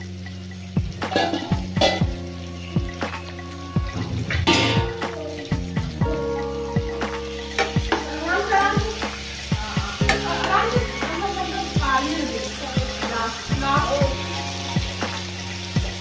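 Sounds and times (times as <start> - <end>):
food sizzling: 0.0 - 16.0
metal spoon scraping frying pan: 1.0 - 2.2, 3.0 - 5.1.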